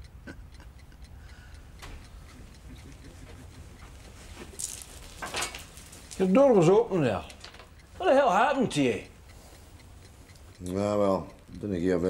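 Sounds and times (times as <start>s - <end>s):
clock ticking: 0.0s - 12.0s.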